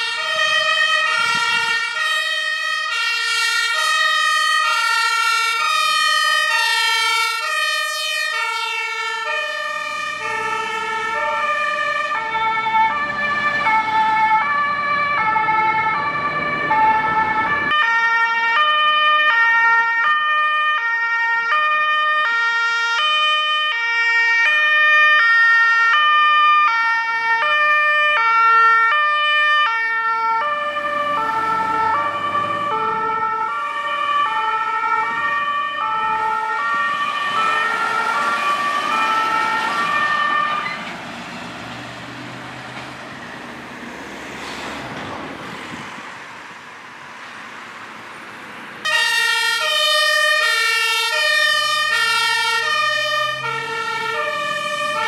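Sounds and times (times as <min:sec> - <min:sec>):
engine and road noise: 0:00.0 - 0:55.0
two-tone emergency sirens: 0:00.0 - 0:55.0.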